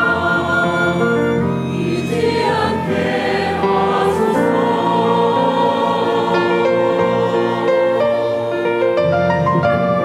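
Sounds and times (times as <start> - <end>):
choir singing sustained chords: 0.0 - 9.8
small orchestra playing: 0.0 - 10.0.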